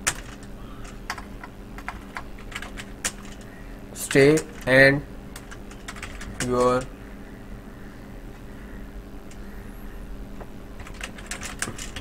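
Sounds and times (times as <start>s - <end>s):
keyboard typing: 0.0s - 4.8s, 5.4s - 6.9s, 10.8s - 12.0s.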